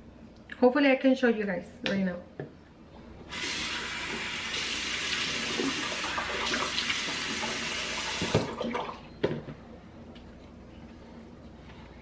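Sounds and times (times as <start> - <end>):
faucet running into sink: 3.3 - 9.0.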